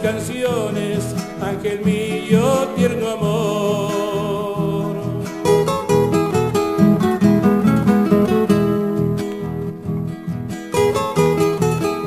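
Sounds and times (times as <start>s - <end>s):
acoustic guitars strumming: 0.0s - 12.0s
guitar picking a melody: 0.0s - 12.0s.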